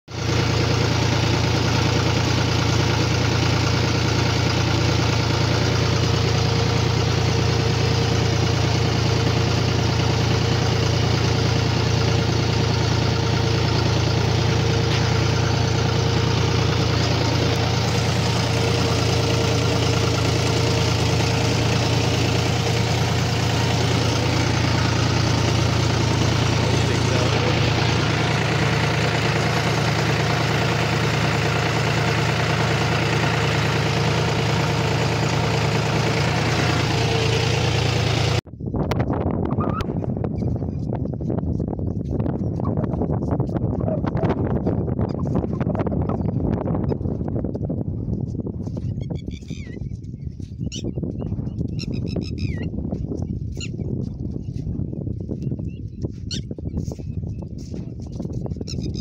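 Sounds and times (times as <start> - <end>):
tractor diesel engine running: 0.0 - 59.0.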